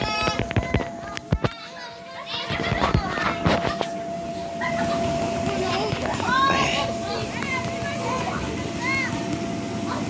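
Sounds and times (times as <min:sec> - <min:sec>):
air blower humming: 0:00.0 - 0:10.0
children shouting and squealing: 0:00.0 - 0:10.0
thumps on bounce house: 0:04.6 - 0:09.9.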